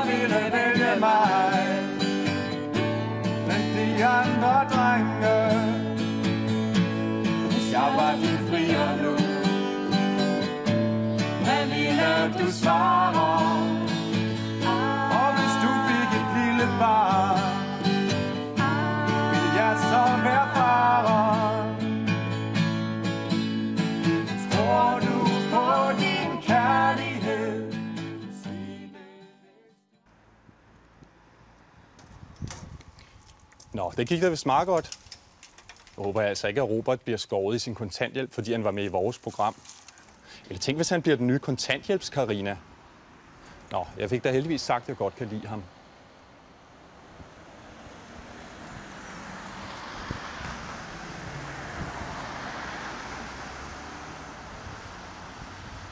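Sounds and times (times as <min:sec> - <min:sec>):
passing cars rushing: 0:00.0 - 0:28.2, 0:42.2 - 0:55.9
acoustic guitar chord ringing: 0:00.0 - 0:29.8
outdoor background noise: 0:30.0 - 0:55.9.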